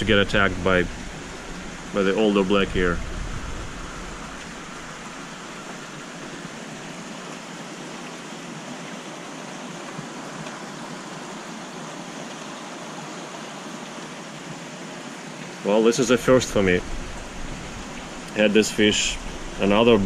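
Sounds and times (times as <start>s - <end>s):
water rushing in aquarium tank: 15.6s - 20.0s.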